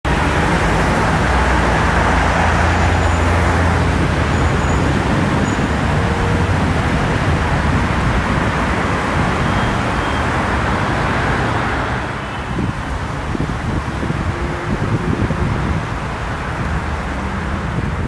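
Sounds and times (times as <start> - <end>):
cars driving past: 0.1 - 18.0.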